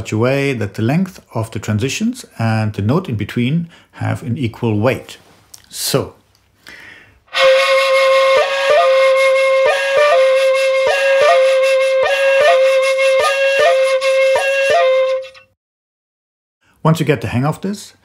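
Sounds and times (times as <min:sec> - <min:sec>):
bamboo flute holding a note: 0:07.3 - 0:15.5.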